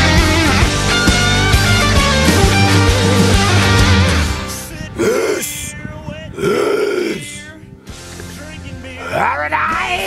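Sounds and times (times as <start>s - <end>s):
man belching: 5.0s - 5.7s, 6.3s - 7.5s.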